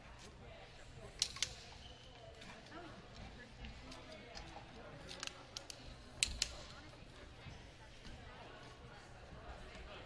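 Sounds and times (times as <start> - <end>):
distant chatter of people: 0.0 - 10.0.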